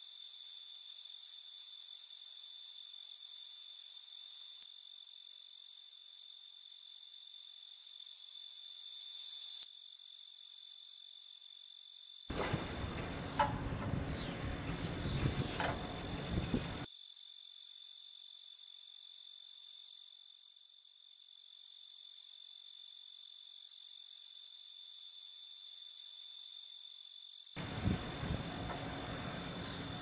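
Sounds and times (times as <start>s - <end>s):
running machinery noise: 12.3s - 16.9s, 27.6s - 30.0s.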